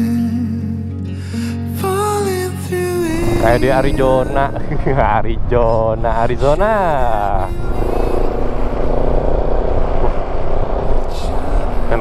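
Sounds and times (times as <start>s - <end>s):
low wind rumble: 3.0s - 12.0s
motorcycle engine cruising: 3.1s - 12.0s.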